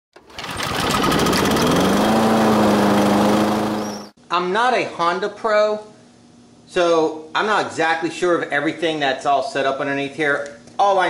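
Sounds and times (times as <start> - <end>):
lawn mower engine starting: 0.2 - 4.1.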